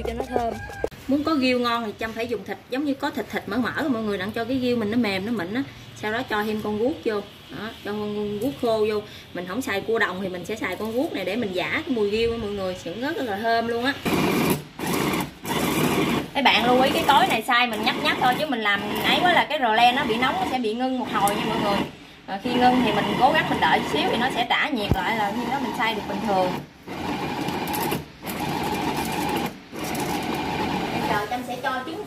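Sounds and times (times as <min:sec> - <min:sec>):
food chopper motor grinding: 0:14.0 - 0:21.9, 0:22.5 - 0:31.2.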